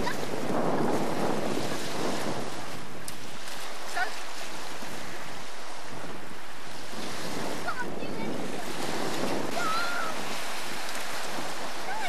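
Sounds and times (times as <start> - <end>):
waves washing onto shingle: 0.0 - 12.0
wind buffeting microphone: 0.0 - 12.0.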